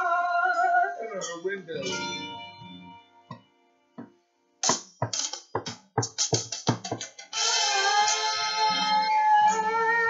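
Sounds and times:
acoustic guitar strumming: 1.2s - 5.7s, 6.3s - 10.0s.

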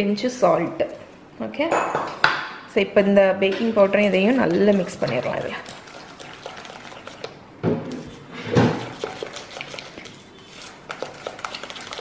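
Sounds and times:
batter churning: 3.8s - 12.0s.

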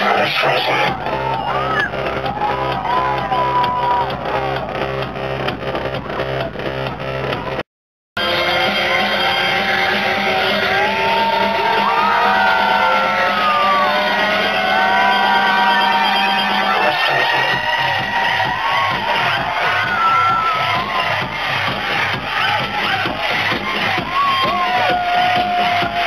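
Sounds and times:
electronic dance music: 0.0s - 7.6s, 8.2s - 26.0s
crowd whooping: 0.4s - 4.8s, 8.2s - 26.0s
kick drum: 17.5s - 26.0s.

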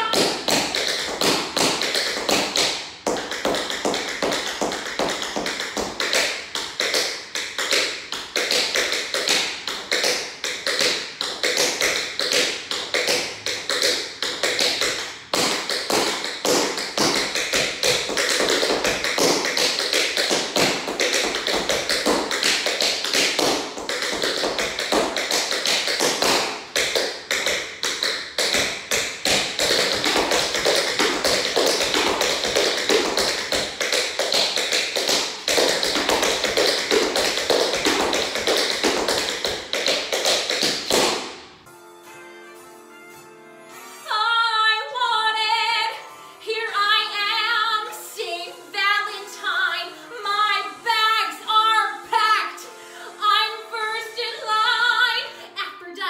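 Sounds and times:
tap dancing on hardwood floor: 0.0s - 41.4s.

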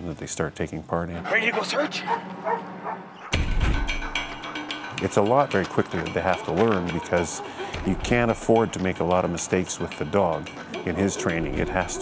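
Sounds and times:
dog barking: 1.3s - 3.4s, 6.0s - 8.9s
music with heavy low beat: 3.3s - 12.0s.

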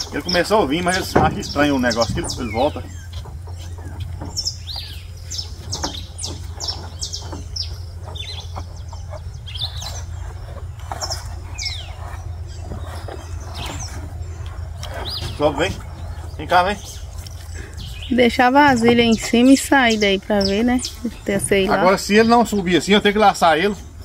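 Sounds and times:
birds chirping: 0.0s - 24.0s
steady low hum: 0.0s - 24.0s.

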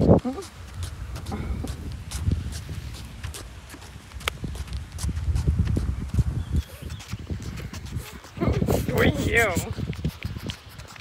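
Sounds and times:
footsteps on concrete: 0.0s - 11.0s
wind rumble on microphone: 0.0s - 11.0s.

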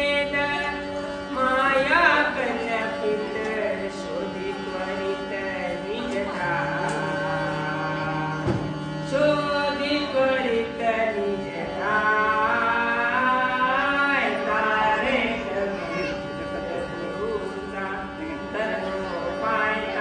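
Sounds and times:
harmonium holding notes: 0.0s - 20.0s
man singing devotional song: 0.0s - 20.0s.

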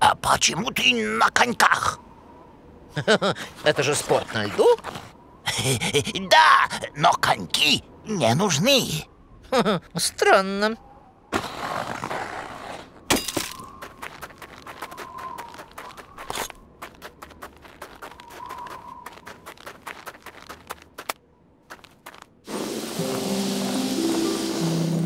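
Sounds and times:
curling broom sweeping ice: 22.5s - 25.0s
music: 22.5s - 25.0s.

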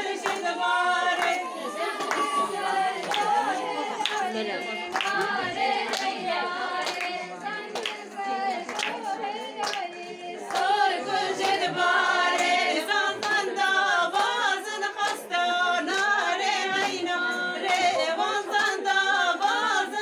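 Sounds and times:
hand claps: 0.0s - 19.6s
women singing unaccompanied: 0.0s - 20.0s.

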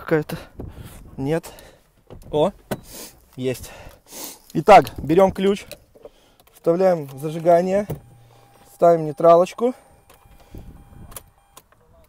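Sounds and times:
ignition key clicks: 5.6s - 11.8s.

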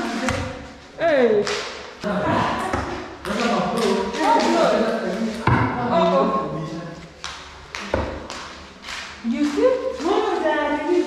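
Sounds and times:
people talking and laughing: 0.0s - 8.2s.

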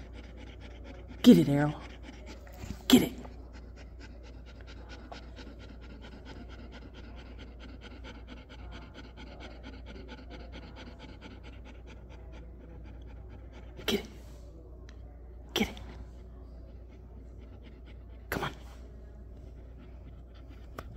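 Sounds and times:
dog panting: 0.0s - 14.6s, 15.6s - 20.9s.

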